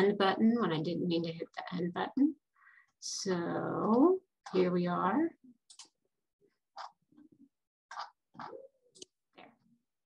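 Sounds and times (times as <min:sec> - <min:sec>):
computer mouse clicks: 0:05.6 - 0:06.0.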